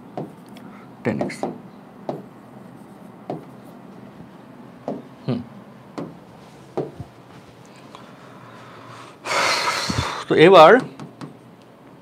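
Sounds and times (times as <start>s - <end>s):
man humming hmm: 5.2s - 5.6s
man breathing loudly: 8.0s - 10.3s.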